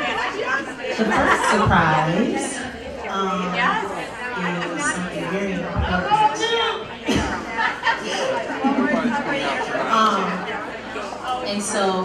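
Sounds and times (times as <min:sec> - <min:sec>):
voices chattering in large room: 0:00.0 - 0:12.0.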